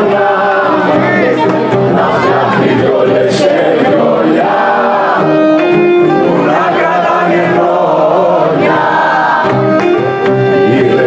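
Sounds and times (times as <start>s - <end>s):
man singing folk song: 0.0s - 9.0s, 10.4s - 11.0s
many voices singing together: 0.0s - 11.0s
strummed acoustic guitar: 0.0s - 11.0s.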